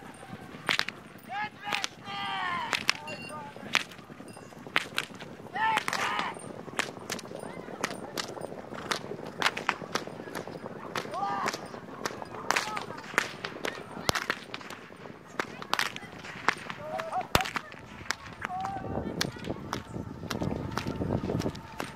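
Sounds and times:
people shouting calls: 0.0 - 21.9
rumble of hooves: 0.0 - 21.9
whip cracks: 0.5 - 1.0, 2.7 - 3.1, 5.8 - 7.2, 7.8 - 21.9.

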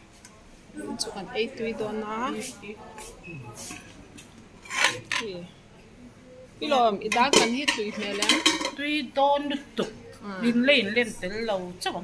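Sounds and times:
people's voices: 0.3 - 12.0
dishes and cutlery clinking: 4.6 - 5.4, 7.0 - 8.9.

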